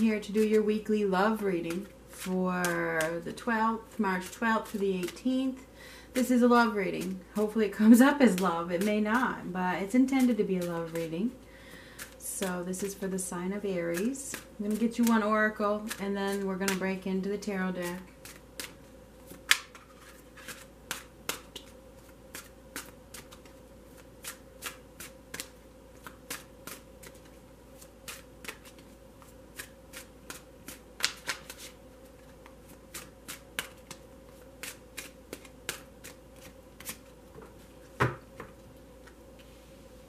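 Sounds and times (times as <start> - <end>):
cards being shuffled: 3.9 - 5.2, 17.9 - 37.6.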